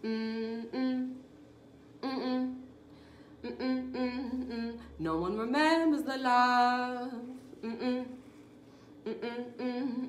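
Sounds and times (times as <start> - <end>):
woman humming: 0.0 - 1.3, 2.0 - 2.8, 3.4 - 5.5, 6.7 - 8.4, 9.0 - 10.0.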